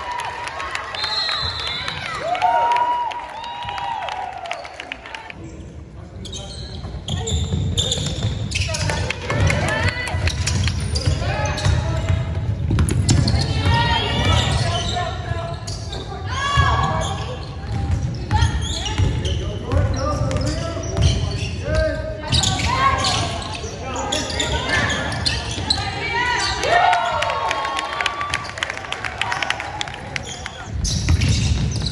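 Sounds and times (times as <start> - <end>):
ball bouncing on hardwood court: 6.8 - 14.6, 16.4 - 21.3, 30.5 - 31.9.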